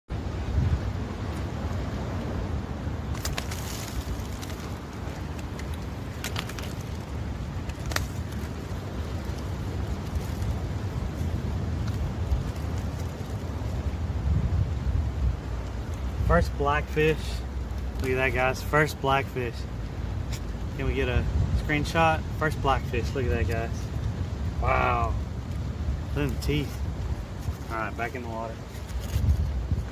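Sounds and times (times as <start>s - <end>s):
wind buffeting microphone: 0.2s - 18.5s, 19.4s - 29.9s.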